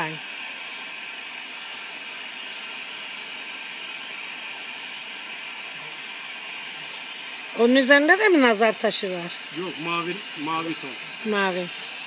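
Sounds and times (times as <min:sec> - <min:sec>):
bench torch hissing: 0:00.0 - 0:12.0.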